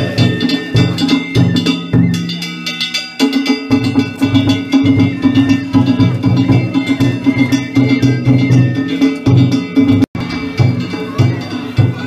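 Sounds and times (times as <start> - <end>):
drum beaten in steady rhythm: 0.0 - 12.0
small hand gongs ringing: 0.0 - 12.0.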